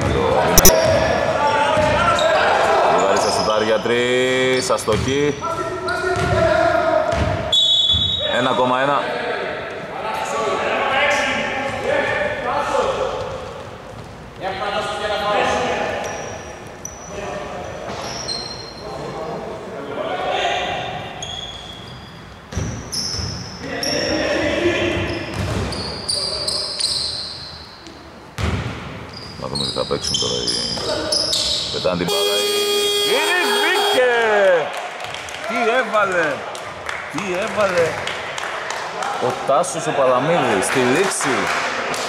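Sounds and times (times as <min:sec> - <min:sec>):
sneakers squeaking: 0:00.0 - 0:02.4, 0:03.0 - 0:06.5, 0:07.1 - 0:08.4, 0:15.9 - 0:18.8, 0:20.8 - 0:24.1, 0:24.9 - 0:34.0
players calling out: 0:00.0 - 0:06.8, 0:30.1 - 0:34.8
basketball bouncing on court: 0:01.8 - 0:02.0, 0:04.8 - 0:05.2, 0:06.2 - 0:06.5, 0:07.1 - 0:08.1.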